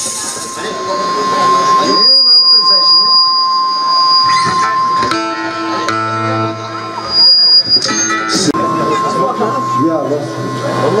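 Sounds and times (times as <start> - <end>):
shrill tone: 0.0 - 11.0
steady high whistle: 0.0 - 11.0.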